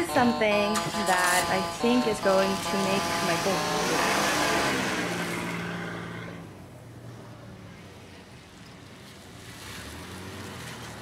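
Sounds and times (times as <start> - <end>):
minivan engine driving off: 0.0 - 11.0.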